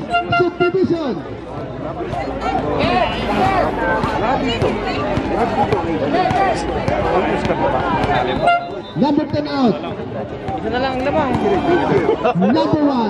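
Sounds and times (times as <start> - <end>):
voices chattering: 0.0 - 13.0.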